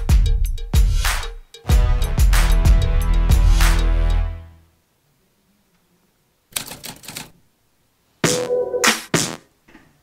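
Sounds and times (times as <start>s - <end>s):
typewriter key clacks: 6.5s - 7.4s.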